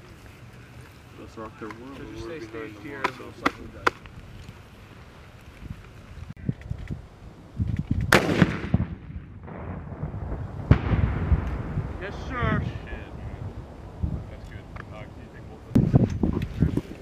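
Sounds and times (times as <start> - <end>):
sharp bang of round bursting: 8.1 - 10.1, 10.7 - 11.9
loud weapon blast with rumble: 8.1 - 12.7.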